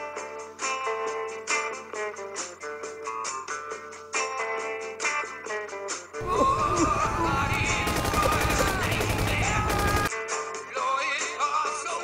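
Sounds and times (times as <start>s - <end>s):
rock song with guitar: 0.0s - 11.8s
automatic gunfire: 6.2s - 10.1s
people shouting: 6.2s - 10.1s.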